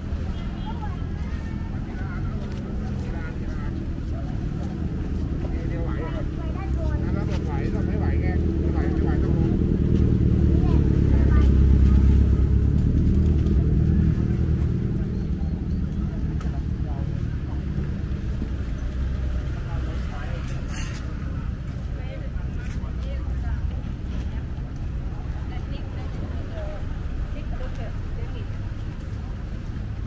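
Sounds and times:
vehicle engine and road rumble: 0.0 - 30.0
voices of passers-by: 0.0 - 30.0.

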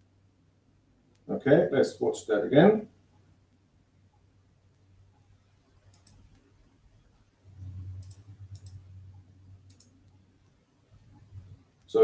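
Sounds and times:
computer mouse clicking: 4.7 - 6.5, 8.0 - 8.8, 9.6 - 11.3.

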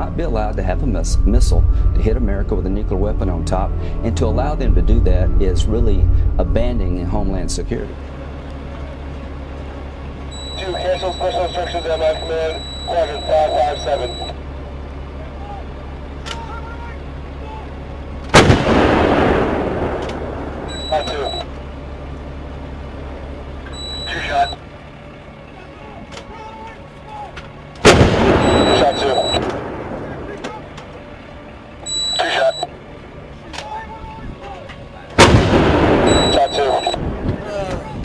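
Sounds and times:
loud rumbling blasts: 0.0 - 15.0, 17.0 - 21.8, 27.8 - 30.8, 35.2 - 38.0.

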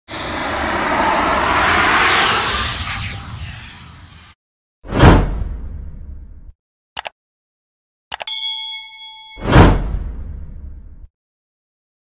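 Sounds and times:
rushing whoosh: 0.1 - 4.4.

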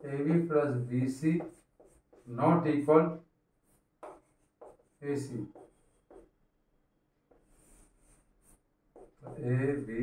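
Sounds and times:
chalk scratching on blackboard: 0.0 - 2.6, 3.6 - 6.4, 7.3 - 10.0.

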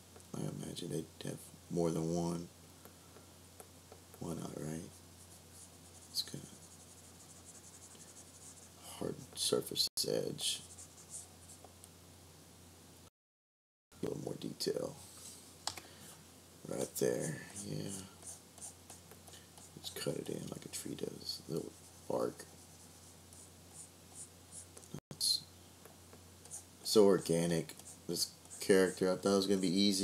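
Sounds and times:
stylus scratching on drawing tablet: 4.2 - 9.4, 10.4 - 11.6, 17.1 - 20.6, 26.4 - 29.8
steady low hum: 14.0 - 30.0.

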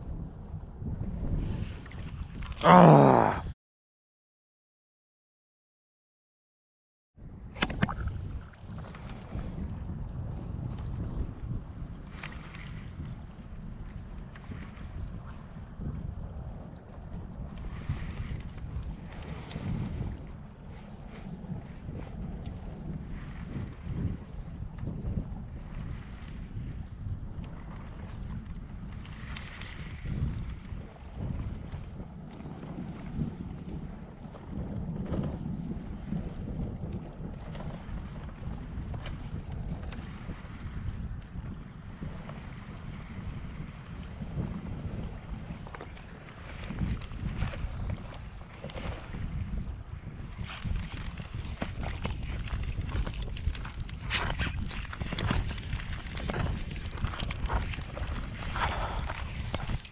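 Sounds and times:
wind buffeting microphone: 0.0 - 3.5, 7.2 - 59.9.

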